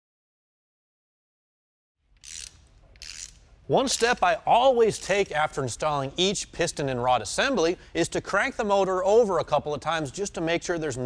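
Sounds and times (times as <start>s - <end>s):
wrench turning engine: 2.2s - 4.2s.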